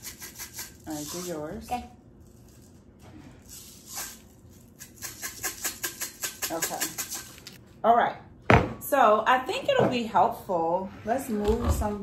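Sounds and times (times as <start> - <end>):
sprinkles rattling in shaker jar: 2.2 - 7.6.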